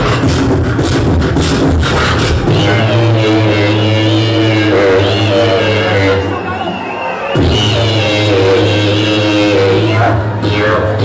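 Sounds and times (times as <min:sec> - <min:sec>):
beatboxer's deep vocal bass drone: 0:00.0 - 0:06.6, 0:07.3 - 0:11.0.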